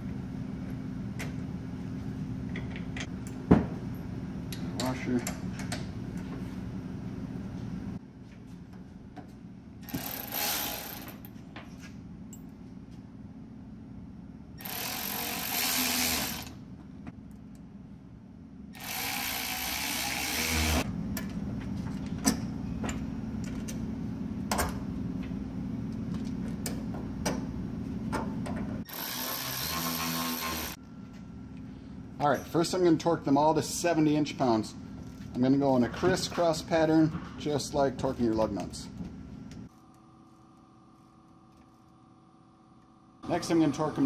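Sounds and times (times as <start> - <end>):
steady low hum: 0.0 - 44.0
electric ratchet running: 9.8 - 11.2, 14.6 - 16.6, 18.7 - 20.9, 28.9 - 30.8.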